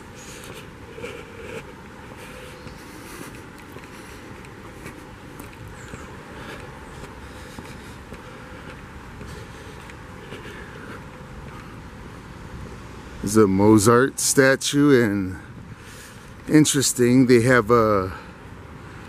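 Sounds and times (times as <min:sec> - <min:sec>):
footsteps on a paved path: 0:00.0 - 0:12.8
outdoor background hum: 0:00.0 - 0:19.0.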